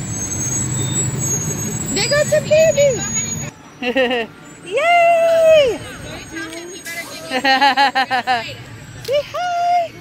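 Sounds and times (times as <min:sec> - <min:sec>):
fire engine diesel engine: 0:00.0 - 0:10.0.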